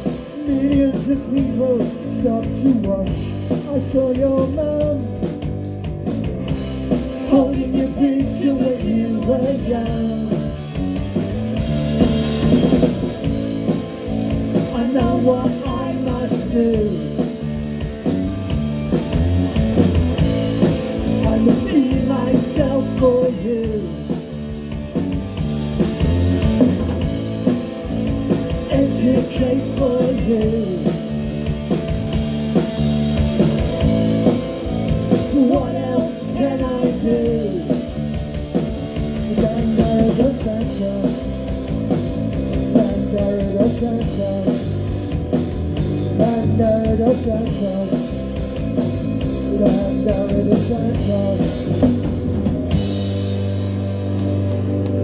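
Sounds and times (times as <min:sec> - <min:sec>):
bass guitar: 0:00.0 - 0:55.0
distorted electric guitar: 0:00.0 - 0:55.0
drum kit: 0:00.0 - 0:55.0
person singing: 0:07.2 - 0:10.5, 0:14.7 - 0:17.3, 0:21.2 - 0:24.2, 0:28.6 - 0:31.2, 0:35.1 - 0:38.0, 0:39.2 - 0:41.4, 0:42.5 - 0:44.8, 0:46.1 - 0:48.3, 0:49.4 - 0:51.9.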